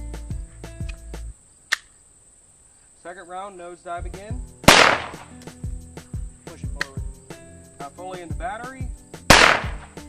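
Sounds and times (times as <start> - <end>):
faint background music: 0.0 - 1.4, 3.0 - 10.0
pistol metallic click: 9.3 - 9.8.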